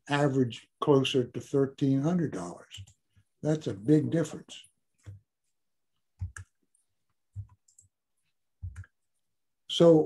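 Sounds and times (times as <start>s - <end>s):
computer mouse clicks: 6.2s - 6.7s, 7.3s - 7.9s.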